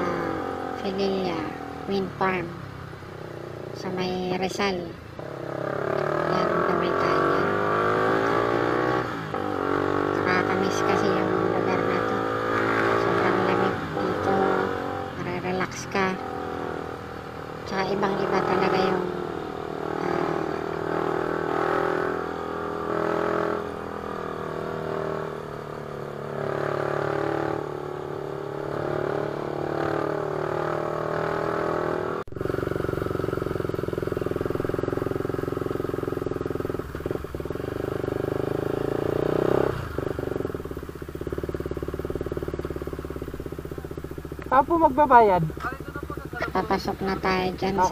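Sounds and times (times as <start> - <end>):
motorcycle engine running: 0.0 - 47.9.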